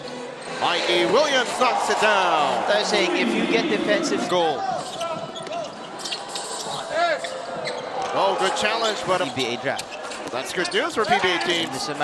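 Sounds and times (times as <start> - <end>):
arena background noise: 0.0 - 12.0
sneaker squeaks: 4.6 - 8.2, 8.9 - 11.7.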